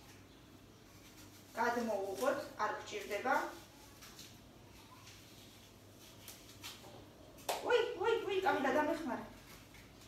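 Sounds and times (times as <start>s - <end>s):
knife cutting an apple: 0.9s - 7.8s.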